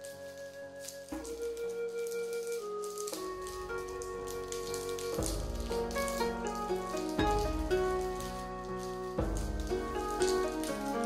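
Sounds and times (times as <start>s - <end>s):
plastic wrapper crinkling: 0.0s - 9.2s
melody with deep bass: 3.4s - 11.0s.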